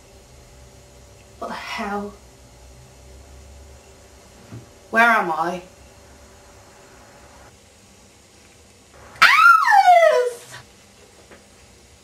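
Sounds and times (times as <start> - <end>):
high wailing cry: 9.1 - 10.6.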